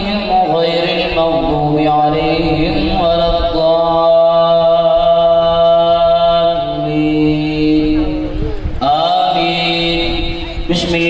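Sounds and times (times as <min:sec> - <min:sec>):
man singing through a microphone: 0:00.0 - 0:11.0.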